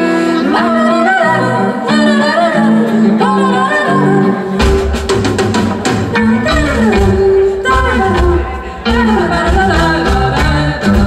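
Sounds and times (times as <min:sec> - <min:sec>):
woman singing: 0:00.0 - 0:05.0, 0:06.0 - 0:11.0
electric guitar: 0:00.0 - 0:11.0.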